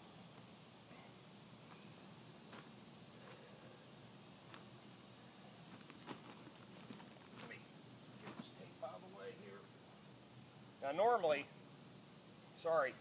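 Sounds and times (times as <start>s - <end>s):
scuffs in dirt: 5.7s - 7.6s.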